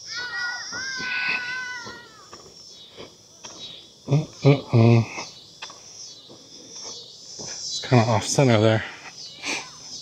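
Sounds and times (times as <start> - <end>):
footsteps on paved path: 0.0 - 4.4, 5.1 - 8.2.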